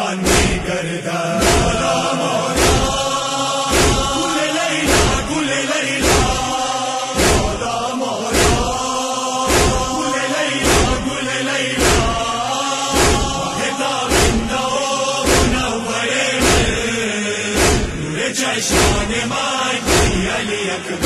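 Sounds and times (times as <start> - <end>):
men chanting a lament: 0.0 - 21.0
rhythmic chest-beating thuds: 0.0 - 21.0.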